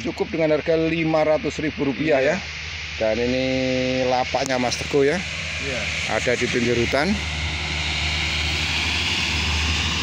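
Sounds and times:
even hiss: 0.0 - 8.2
steady low drone: 0.0 - 10.0.

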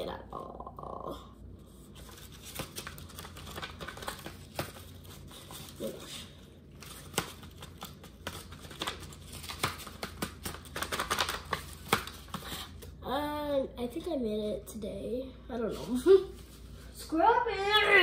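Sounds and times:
paper rustling and crinkling: 1.8 - 12.6
paper puppet clicks and snaps: 8.2 - 12.2.

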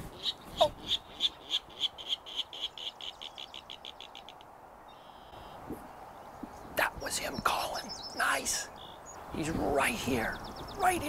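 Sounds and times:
bird calling sharp notes: 0.0 - 5.6.

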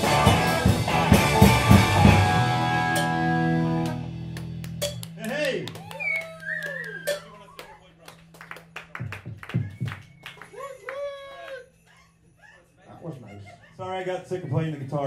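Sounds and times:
audience clapping and whooping: 3.8 - 12.0.

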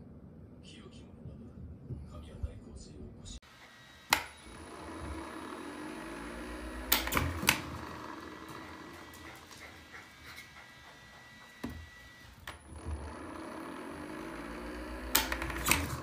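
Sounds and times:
ball launcher motor humming: 3.4 - 16.0
ball launcher click: 4.1 - 4.4, 6.7 - 8.0, 15.0 - 16.0.

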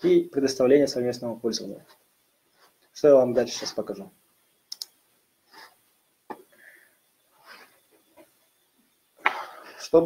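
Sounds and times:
computer mouse clicks: 4.7 - 5.0.

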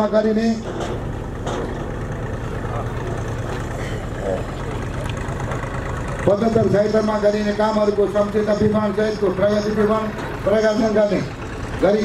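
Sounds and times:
low engine rumble: 0.0 - 12.0
faint voices: 1.5 - 12.0.

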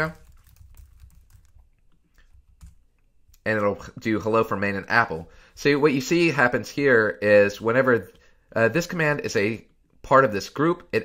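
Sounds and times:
keyboard keystrokes: 0.1 - 2.8.

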